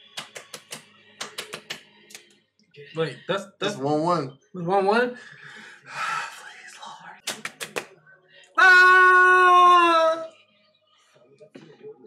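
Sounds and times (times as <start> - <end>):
sharp claps: 0.0 - 2.3, 7.2 - 8.0.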